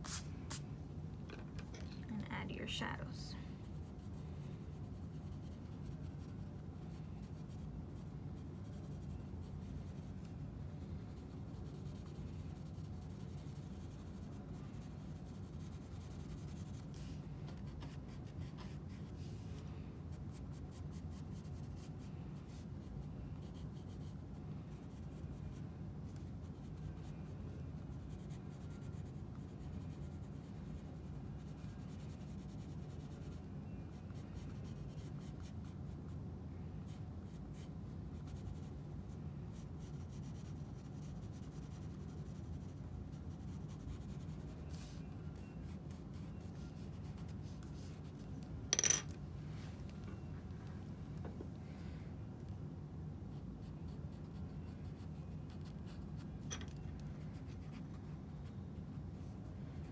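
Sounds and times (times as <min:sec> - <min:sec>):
steady low hum: 0:00.0 - 0:59.9
pencil scratching on paper: 0:03.8 - 0:10.3, 0:11.1 - 0:19.2, 0:39.8 - 0:48.2, 0:53.3 - 0:56.6.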